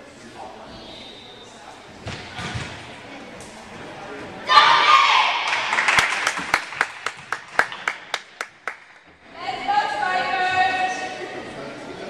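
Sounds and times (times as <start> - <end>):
hands clapping rhythmically: 5.5 - 9.0.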